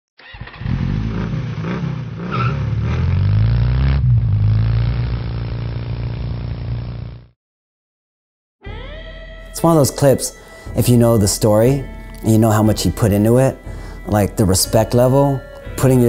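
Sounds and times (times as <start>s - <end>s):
motorcycle engine revving: 0.2s - 7.3s.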